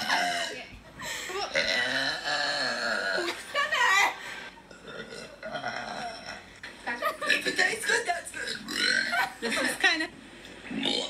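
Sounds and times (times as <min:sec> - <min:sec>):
girl burping: 0:00.0 - 0:00.7, 0:01.4 - 0:03.5, 0:04.6 - 0:06.5, 0:08.4 - 0:09.3.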